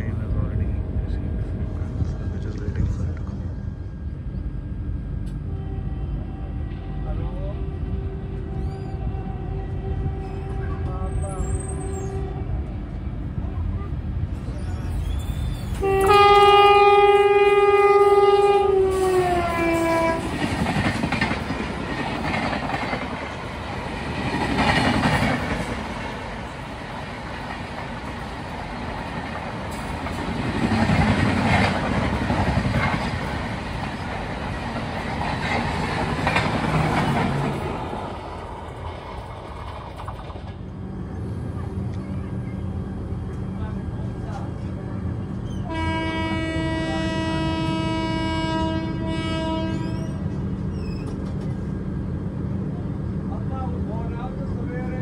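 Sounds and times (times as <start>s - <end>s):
locomotive horn: 5.4s - 12.8s, 15.8s - 20.4s, 45.6s - 50.2s
train wheels clattering over rails: 19.0s - 40.6s.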